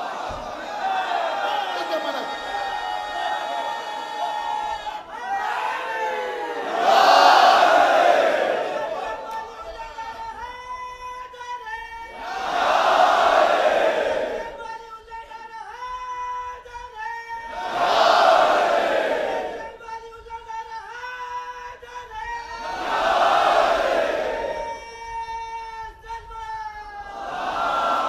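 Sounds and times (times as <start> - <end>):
crowd of men shouting together: 0.0 - 10.0, 12.1 - 14.6, 17.5 - 19.8, 22.5 - 24.8, 27.0 - 28.0.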